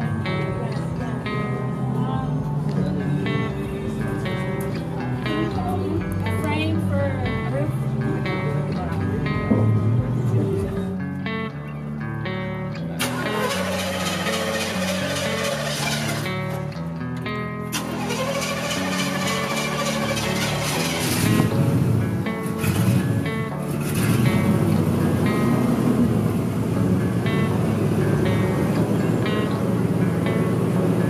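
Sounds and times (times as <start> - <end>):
guitar music: 0.0 - 31.0
truck engine rumbling: 12.0 - 31.0.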